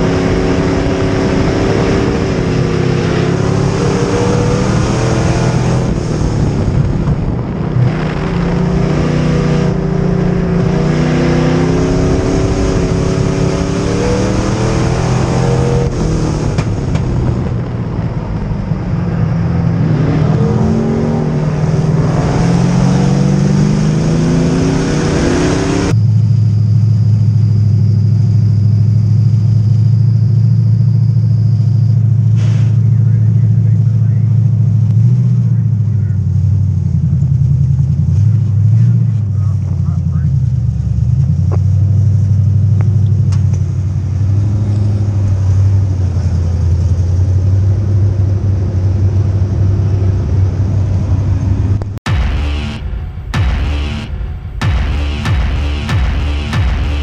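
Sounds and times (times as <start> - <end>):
race car engine revving: 0.0 - 26.0, 31.8 - 57.0.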